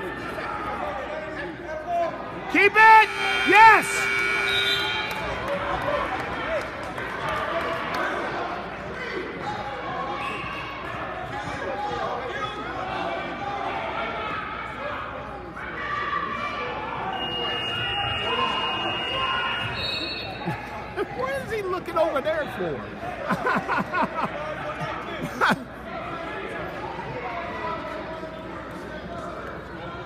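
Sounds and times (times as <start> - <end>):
crowd chatter echoing in a hall: 0.0 - 30.0.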